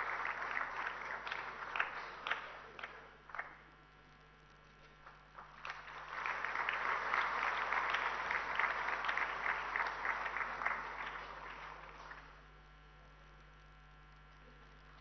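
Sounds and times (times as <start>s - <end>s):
audience applauding: 0.0s - 3.7s, 5.0s - 12.5s.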